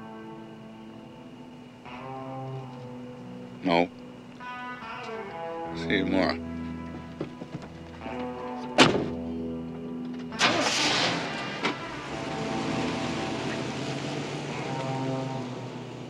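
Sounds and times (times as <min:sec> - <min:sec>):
soft music with held notes: 0:00.0 - 0:16.0
car door slamming: 0:08.8 - 0:09.2
car engine starting and running: 0:10.1 - 0:16.0.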